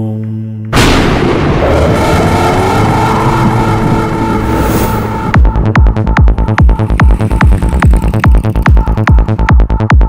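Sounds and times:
low rumble: 0.8 - 9.3
beat: 5.0 - 10.0.

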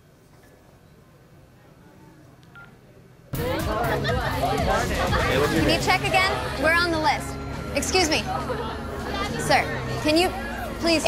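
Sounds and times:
faint phone beep: 2.5 - 2.8.

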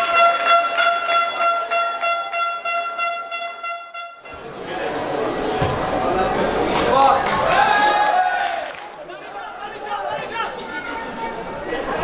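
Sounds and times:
air horn long note: 0.0 - 4.4.

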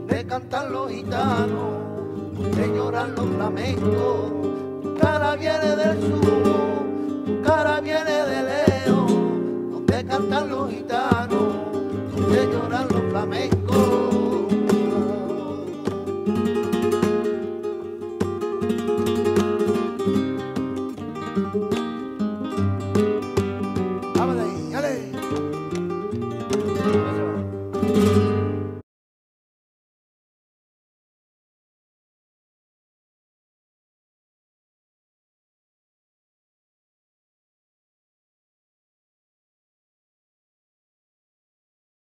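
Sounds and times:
person singing: 0.0 - 16.6, 24.1 - 25.3
flamenco acoustic guitar: 0.0 - 28.8.

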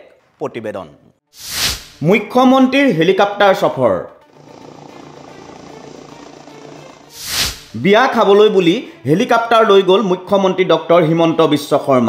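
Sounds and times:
helicopter engine and rotor: 4.4 - 7.1.

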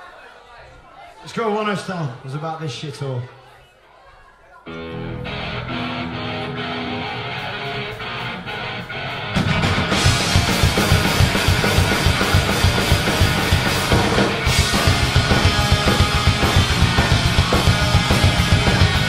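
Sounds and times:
electric guitar intro: 4.7 - 19.0
punk rock band playing: 4.7 - 19.0
driving drum beat: 9.4 - 19.0.

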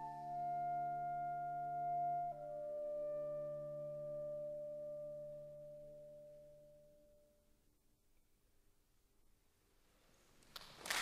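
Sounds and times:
clarinet holding long note: 0.0 - 6.8
low sustained tones: 0.0 - 7.6.

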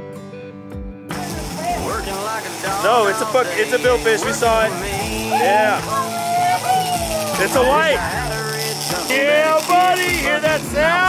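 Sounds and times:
country song: 1.0 - 11.0
fishing reel clicker ratcheting: 1.2 - 10.6
hiss of boat wake: 1.2 - 11.0.

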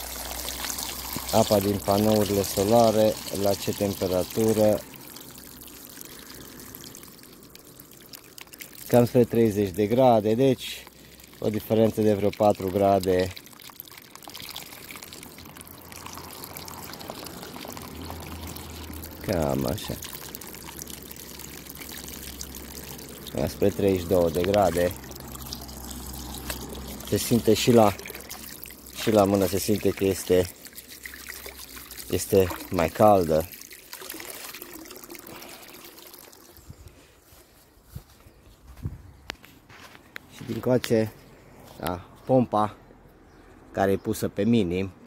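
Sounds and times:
water pouring into pool: 0.0 - 37.0.

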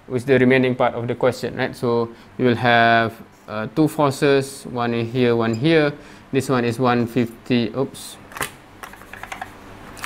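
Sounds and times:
marker clicking and tapping: 8.8 - 9.5.

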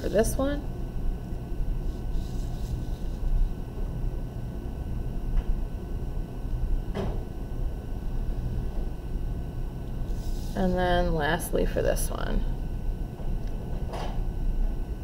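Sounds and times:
pencil scratching on paper: 1.9 - 3.3.

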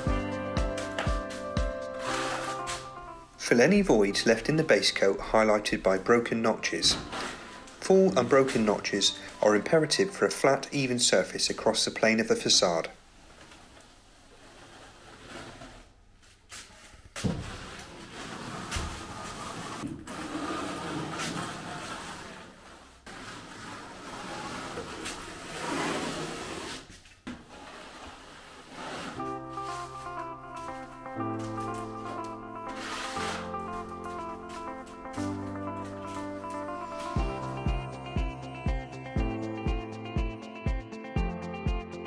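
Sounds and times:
background music: 0.0 - 11.6, 28.8 - 42.0
spatula scraping wet render: 2.0 - 2.9, 31.8 - 34.6.

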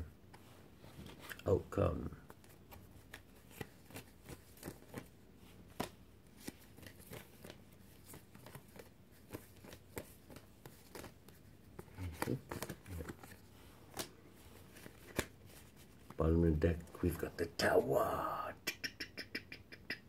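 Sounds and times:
cards being shuffled: 0.3 - 1.5, 2.2 - 16.2.

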